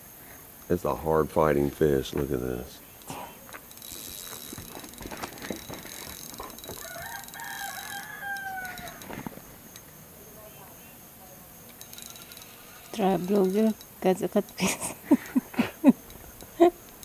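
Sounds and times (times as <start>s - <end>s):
high insect drone: 0.0s - 17.0s
rooster crowing: 6.2s - 9.3s.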